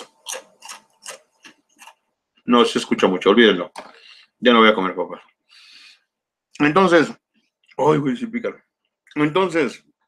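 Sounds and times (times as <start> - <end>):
potato chips being chewed: 0.0 - 2.0.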